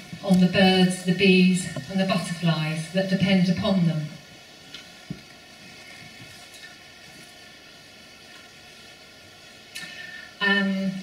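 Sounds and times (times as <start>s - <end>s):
low hiss and hum: 0.0s - 11.0s.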